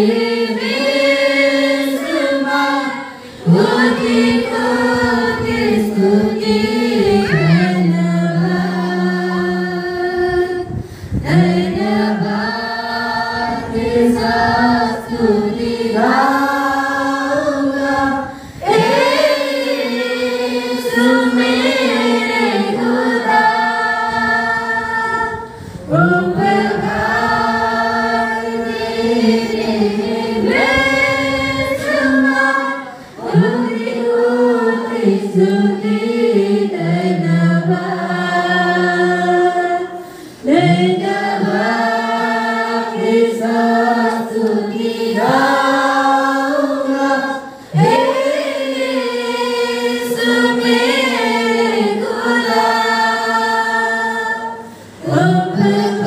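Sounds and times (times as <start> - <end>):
congregation singing: 0.0 - 56.0.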